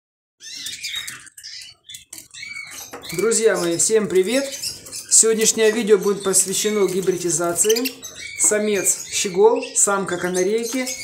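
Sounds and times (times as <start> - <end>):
finches chirping: 0.4 - 11.0.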